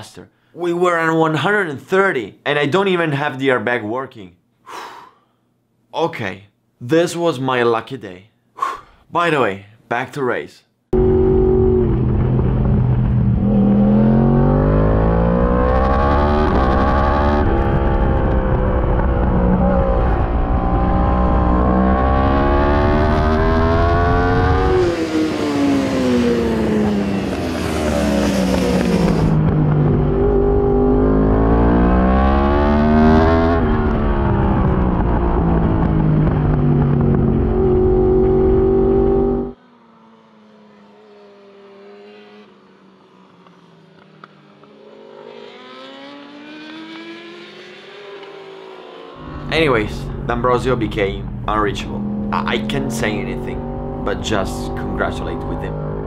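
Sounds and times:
motorcycle engine revving: 11.0 - 56.0.

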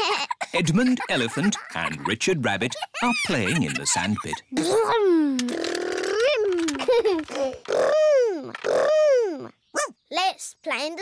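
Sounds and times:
children giggling: 0.0 - 5.0, 5.8 - 9.4
cartoon children imitating engines: 4.5 - 9.9.

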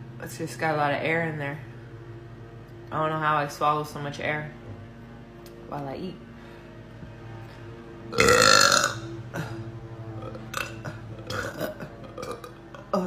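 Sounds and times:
woman burping: 8.2 - 13.0
cough: 10.8 - 12.4.

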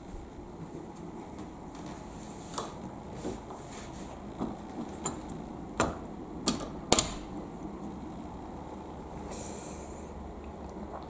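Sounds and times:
soft footsteps on wooden floor: 0.0 - 4.9.

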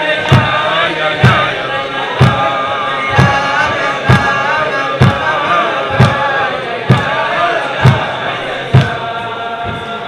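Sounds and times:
men singing in unison: 0.0 - 10.0
beat-keeping thump: 0.2 - 10.0.

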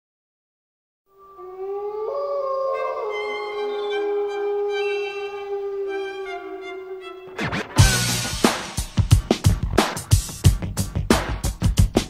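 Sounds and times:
bowed string notes: 2.8 - 8.7.

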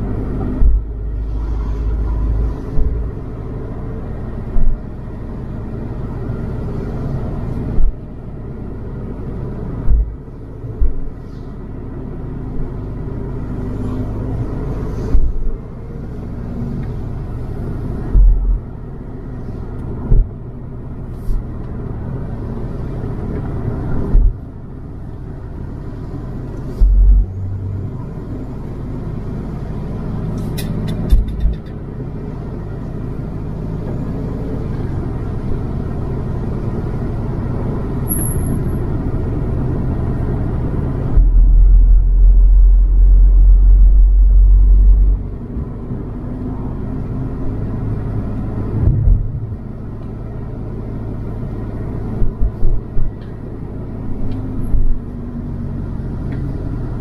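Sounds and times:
loud deep rumble: 0.0 - 11.9, 12.6 - 28.6, 38.6 - 57.0
car engine and tyres rumbling: 0.0 - 57.0
heavy low thumps: 0.5 - 1.1, 9.8 - 11.2, 18.0 - 18.7, 20.0 - 20.5, 48.8 - 49.7.

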